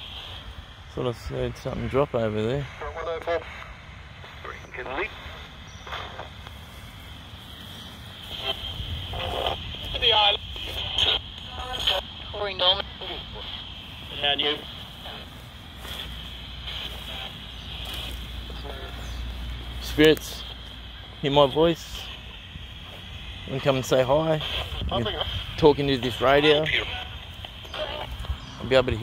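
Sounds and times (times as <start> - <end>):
radio static hiss: 0.0 - 29.0
chopped radio voice fragments: 1.7 - 29.0
radio sweep clicks: 2.7 - 29.0.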